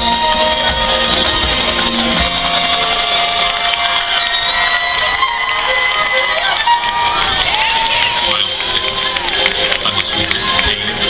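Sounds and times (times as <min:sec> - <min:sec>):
marching band holding chord: 0:00.0 - 0:11.0.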